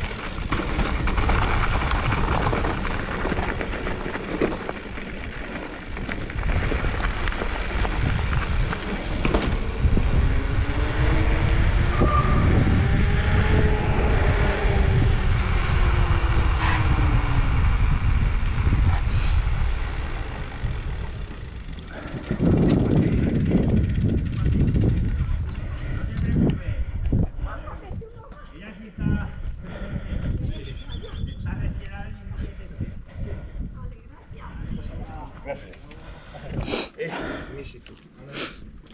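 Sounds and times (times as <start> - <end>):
bike clicks: 0.0 - 10.7, 16.4 - 27.4, 35.5 - 36.7, 37.7 - 38.9
wind rushing over camera: 0.0 - 28.3, 29.0 - 35.4
bike tyres humming on asphalt: 0.0 - 38.9.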